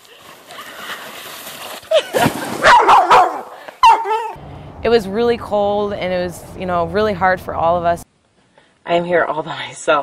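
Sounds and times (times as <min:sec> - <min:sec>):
dog barking: 0:02.6 - 0:04.4.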